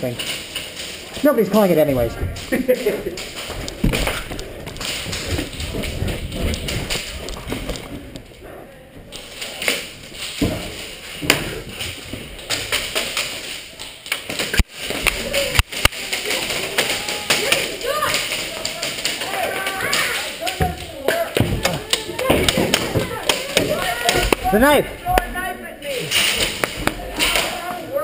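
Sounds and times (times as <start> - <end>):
sharp cracks: 0.0 - 8.3, 9.1 - 25.3, 26.0 - 28.0
footsteps: 0.0 - 28.0.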